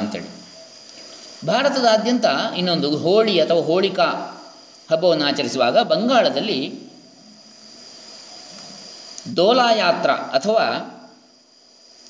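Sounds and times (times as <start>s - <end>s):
faint high-pitched whine: 0.0s - 12.0s
low background hiss: 0.0s - 12.0s.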